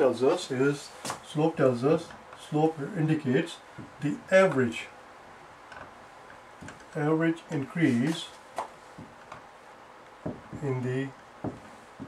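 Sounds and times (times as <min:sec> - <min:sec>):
marker writing on a whiteboard: 0:07.8 - 0:09.5, 0:10.2 - 0:12.0.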